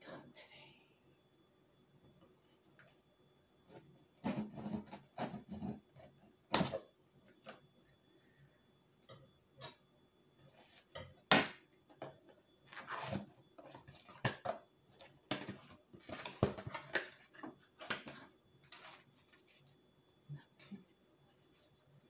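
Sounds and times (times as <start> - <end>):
paper wrapping rustling: 16.1 - 19.7.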